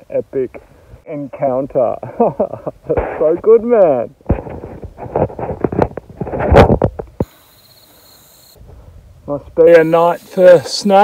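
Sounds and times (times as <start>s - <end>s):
man laughing breathily: 2.0s - 3.2s
microphone handling clicks: 4.2s - 7.3s
crickets chirring: 7.2s - 8.6s, 9.7s - 11.0s.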